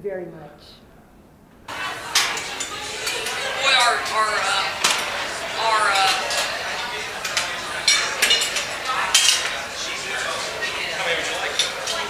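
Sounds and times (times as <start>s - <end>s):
crowd chatter: 1.6s - 12.0s
metal utensils clinking on dishes: 1.7s - 12.0s.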